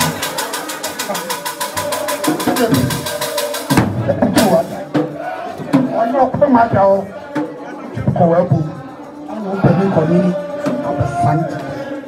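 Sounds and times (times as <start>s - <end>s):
fast percussion strokes: 0.0s - 12.0s
voices: 0.0s - 12.0s.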